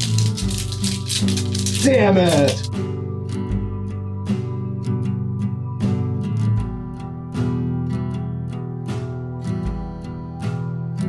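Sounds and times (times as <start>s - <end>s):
maracas rattling: 0.0s - 2.7s
background music: 0.0s - 11.0s.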